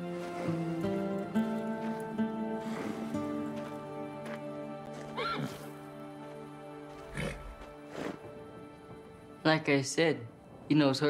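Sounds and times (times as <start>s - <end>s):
slow sustained film score: 0.0s - 10.7s
breathy horse snort: 2.6s - 3.4s, 7.0s - 8.3s
horse whinnying: 5.1s - 5.8s, 7.0s - 7.7s.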